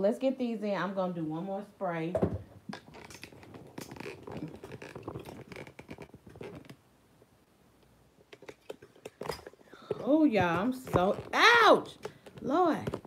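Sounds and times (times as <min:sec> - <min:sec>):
phone handling clicks and scrapes: 0:08.2 - 0:13.0.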